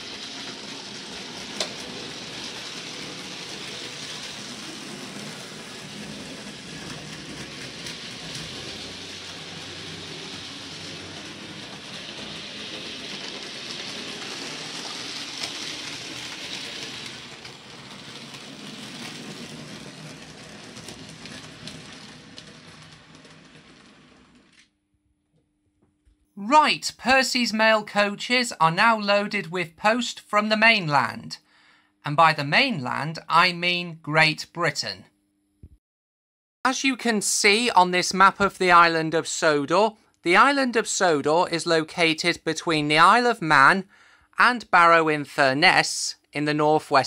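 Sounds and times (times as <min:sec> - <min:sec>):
model train rattling whirr: 0:00.0 - 0:24.7.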